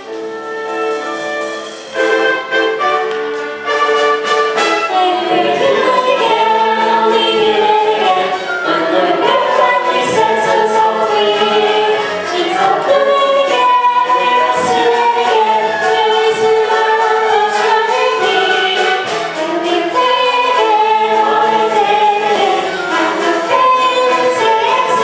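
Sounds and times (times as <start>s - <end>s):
choir singing with accompaniment: 1.0s - 25.0s.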